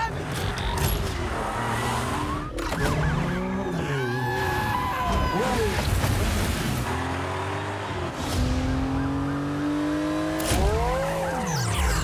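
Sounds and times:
car engines running at speed: 0:00.0 - 0:12.0.

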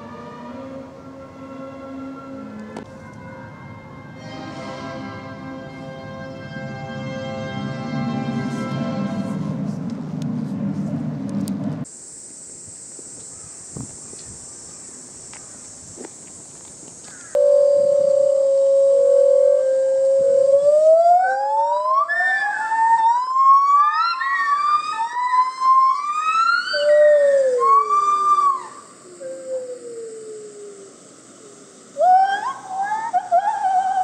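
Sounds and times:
gibbon whooping call: 0:17.4 - 0:34.0.

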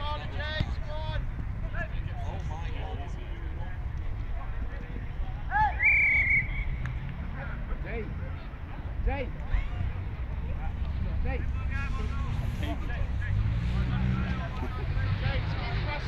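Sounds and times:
players shouting: 0:05.4 - 0:07.1.

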